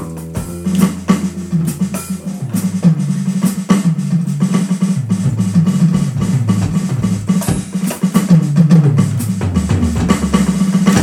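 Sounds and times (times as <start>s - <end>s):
electric bass line: 0.0s - 7.6s, 8.4s - 11.0s
jazz drum kit with cymbals: 0.0s - 11.0s.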